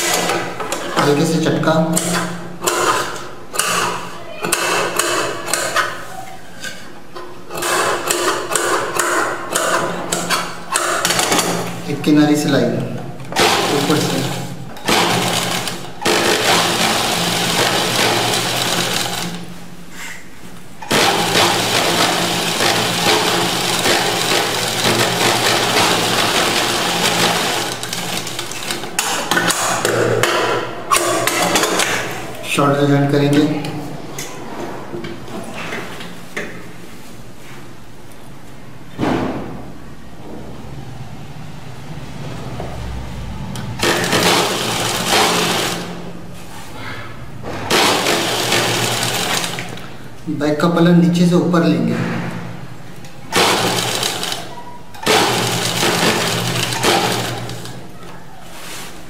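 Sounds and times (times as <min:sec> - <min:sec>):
person talking: 0:11.8 - 0:14.6, 0:32.3 - 0:34.5
sewing machine running: 0:13.4 - 0:19.5, 0:20.9 - 0:29.8, 0:43.6 - 0:46.1, 0:47.7 - 0:49.9, 0:53.3 - 0:57.9.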